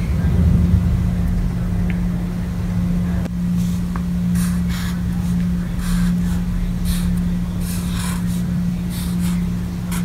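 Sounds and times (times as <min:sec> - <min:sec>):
loud low hum: 0:00.0 - 0:10.0
marker scratching on paper: 0:03.6 - 0:10.0.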